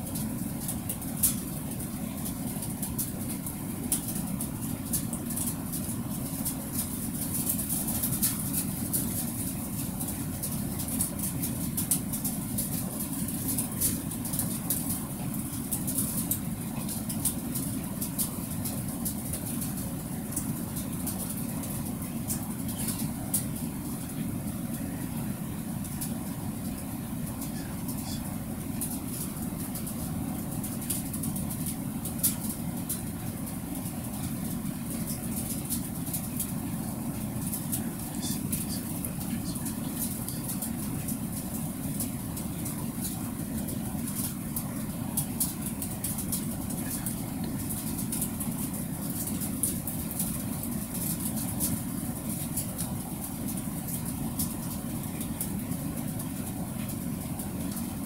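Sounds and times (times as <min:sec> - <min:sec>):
faint high-pitched clicks and crackle: 0:00.0 - 0:58.0
low rumbling hum: 0:00.0 - 0:58.0.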